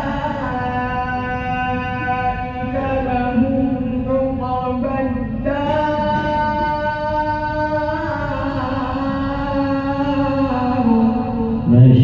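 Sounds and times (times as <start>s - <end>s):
person reciting melodically: 0.0s - 12.0s.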